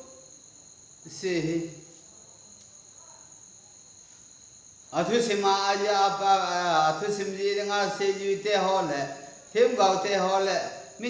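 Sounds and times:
low background hiss: 0:00.0 - 0:11.0.

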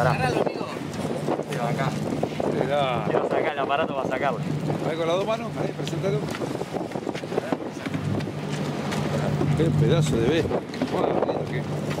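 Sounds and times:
boat engine humming: 0:00.0 - 0:12.0
wind buffeting microphone: 0:00.0 - 0:12.0.

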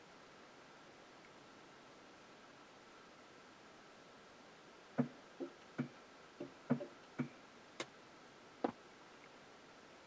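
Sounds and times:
irregular ticks under a car: 0:05.0 - 0:07.9.

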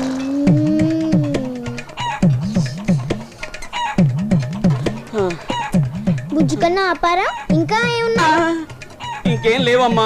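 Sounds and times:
comic background music: 0:00.0 - 0:10.0.

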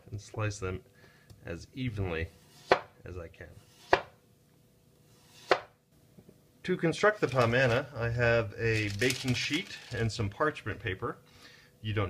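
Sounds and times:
knife cutting onto cutting board: 0:03.6 - 0:04.1.

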